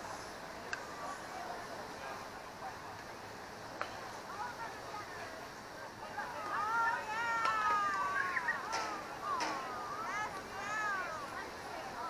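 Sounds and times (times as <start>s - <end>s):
high-pitched voices shouting: 6.6s - 11.3s.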